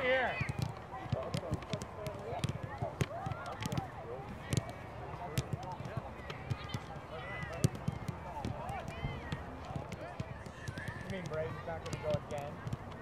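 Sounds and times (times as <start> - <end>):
boys chattering: 0.0 - 13.0
soccer balls being kicked: 0.0 - 13.0.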